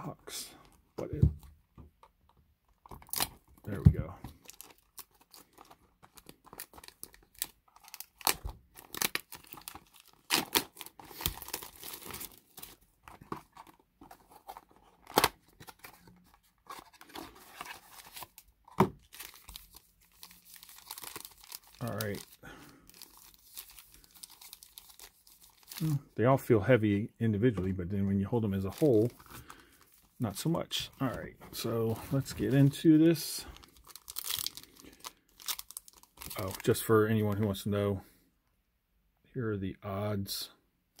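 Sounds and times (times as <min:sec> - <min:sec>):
foil packs rustling: 0:04.3 - 0:18.4, 0:19.0 - 0:26.0, 0:28.6 - 0:36.8
plastic shrink wrap tearing: 0:19.0 - 0:26.0, 0:33.6 - 0:36.8.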